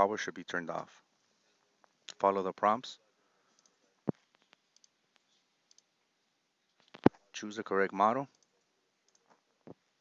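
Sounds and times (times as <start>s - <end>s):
computer mouse click: 3.5s - 5.9s.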